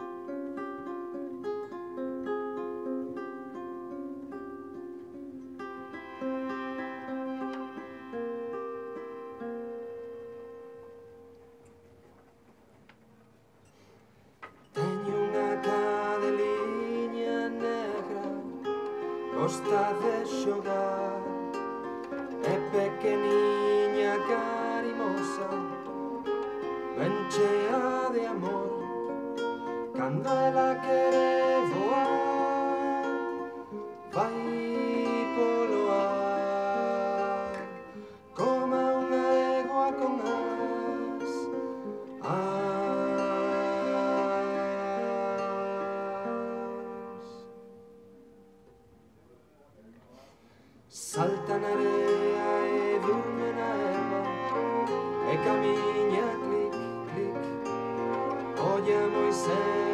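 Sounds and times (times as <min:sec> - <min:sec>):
bowed string instrument: 0:00.0 - 0:11.4, 0:14.8 - 0:47.6, 0:51.1 - 0:59.9
classical guitar: 0:00.0 - 0:59.9
man singing: 0:14.7 - 0:47.5, 0:50.9 - 0:59.9.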